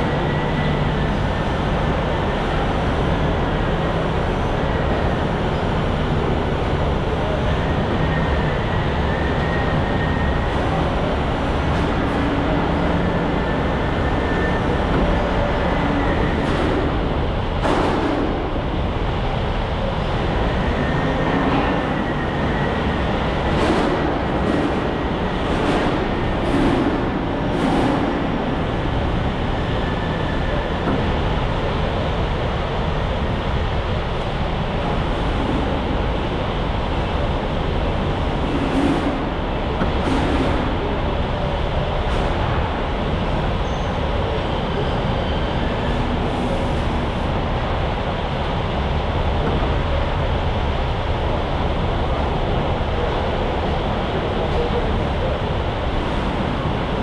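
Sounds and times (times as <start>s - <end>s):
heavy machinery rumbling: 0.0s - 57.0s.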